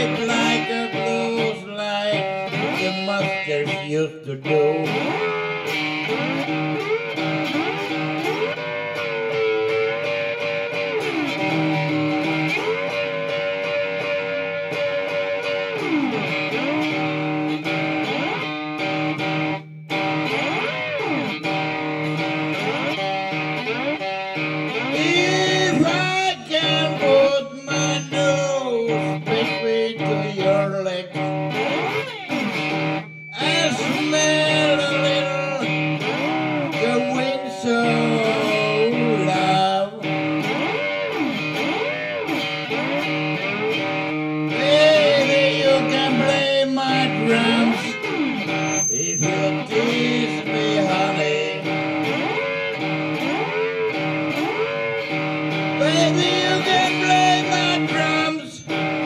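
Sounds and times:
blues guitar lead with bent notes: 0.0 - 59.0.

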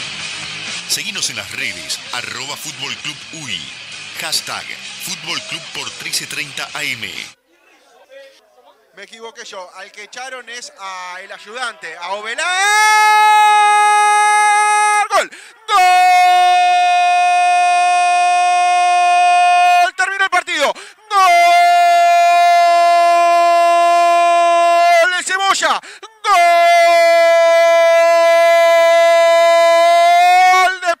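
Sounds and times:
radio narrator shouting gol: 0.9 - 7.4, 18.9 - 29.2, 29.9 - 31.0
person breathing: 15.3 - 15.7, 20.8 - 21.1, 25.8 - 26.0.

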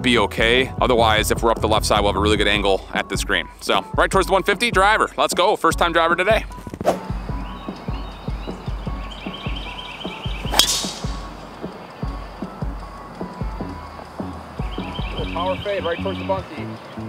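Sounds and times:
background music with steady beat: 0.0 - 17.0
golf driver hitting ball: 10.5 - 11.4.

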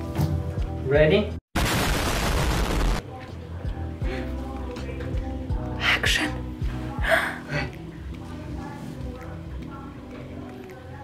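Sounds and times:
background music: 0.0 - 1.4, 2.4 - 11.0
loud explosion blast: 1.6 - 3.0.

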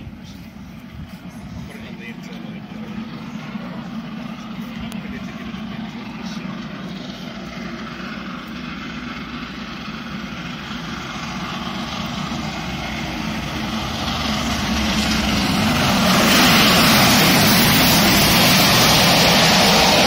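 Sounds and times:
steam locomotive exhaust: 0.0 - 20.0
train running gear: 0.0 - 20.0.

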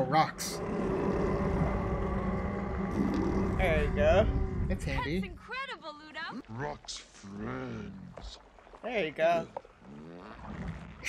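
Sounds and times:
steady low rumble: 0.3 - 5.5
bog water churning and splashing: 6.4 - 11.0.

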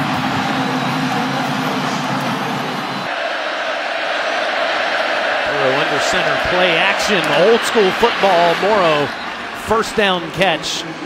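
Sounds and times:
stadium crowd cheering: 0.0 - 11.0
steady crowd noise: 0.0 - 11.0.

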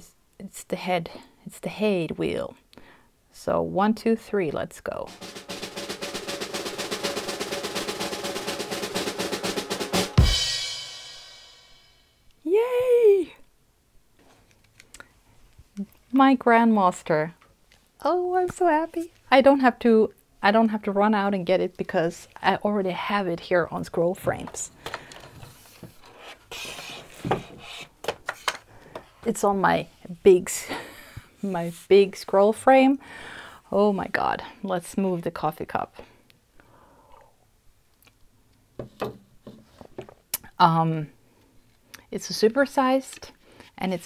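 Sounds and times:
rapid drum roll of ticks: 5.1 - 10.6
wood sliding and rubbing: 25.3 - 28.6
wooden knock: 38.8 - 39.6.

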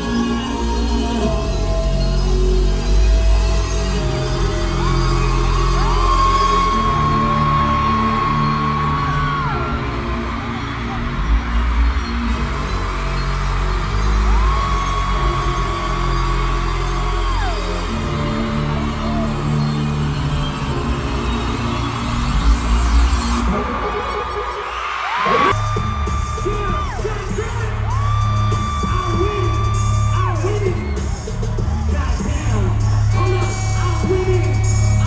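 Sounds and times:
heavy bass: 0.0 - 24.6, 25.4 - 35.0
loud live concert music: 0.0 - 35.0.

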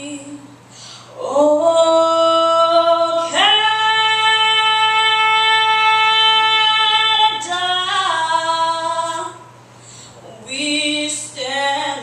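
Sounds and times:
girl singing into a microphone: 0.0 - 9.4, 10.2 - 12.0.

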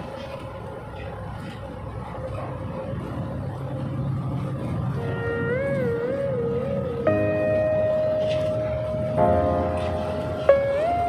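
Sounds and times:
bus engine and road rumble: 0.0 - 11.0
wavering pitched tone: 4.9 - 11.0.

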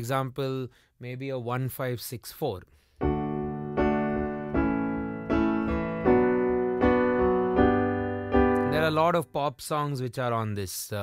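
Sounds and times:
piano chords: 3.0 - 9.5.

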